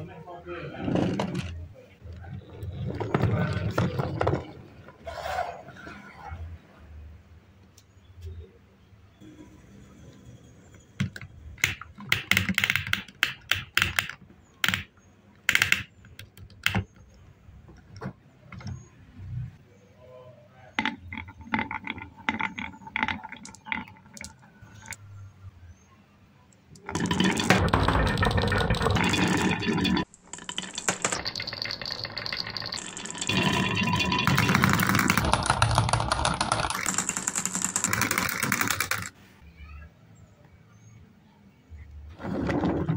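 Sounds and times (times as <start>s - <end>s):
plastic toy parts clicking and rattling: 11.0s - 17.2s, 20.8s - 25.0s, 26.7s - 39.2s
marbles dropping into plastic drum: 20.8s - 25.0s, 26.8s - 39.1s.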